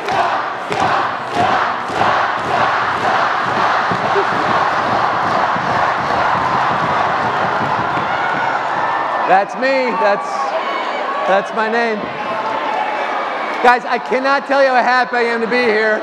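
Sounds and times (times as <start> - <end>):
crowd cheering and chanting: 0.0 - 16.0.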